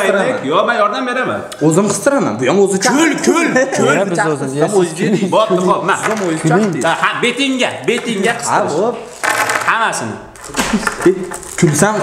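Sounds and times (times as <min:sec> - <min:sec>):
men talking: 0:00.0 - 0:12.0.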